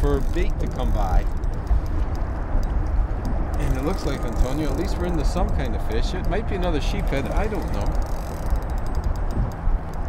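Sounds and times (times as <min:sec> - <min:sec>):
wind rumble: 0:00.0 - 0:10.0.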